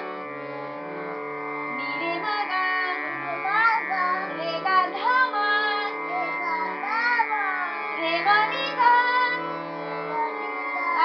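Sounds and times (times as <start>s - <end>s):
harmonium chords: 0.0s - 11.0s
child singing: 1.8s - 11.0s.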